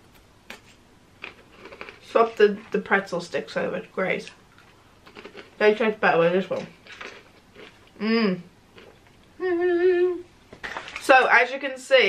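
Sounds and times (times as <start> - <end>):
pretzel stick crunching: 0.5 - 2.4.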